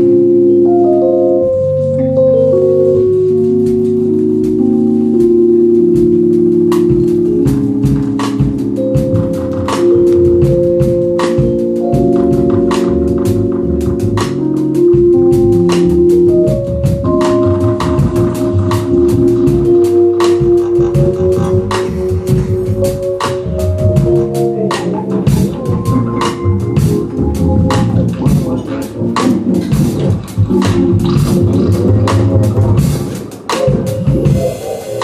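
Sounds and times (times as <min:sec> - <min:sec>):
keyboard chords: 0:00.0 - 0:35.0
walking double bass: 0:01.0 - 0:34.5
drum and cymbal strikes: 0:03.6 - 0:35.0.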